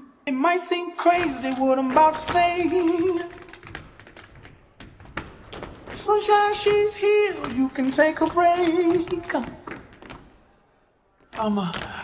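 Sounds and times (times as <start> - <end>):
tap shoes striking stage floor: 1.0 - 10.6.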